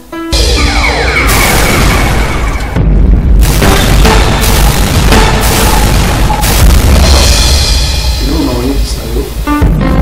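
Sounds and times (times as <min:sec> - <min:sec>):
music with heavy bass beat: 0:00.4 - 0:08.3
bright noisy hit: 0:00.4 - 0:08.7.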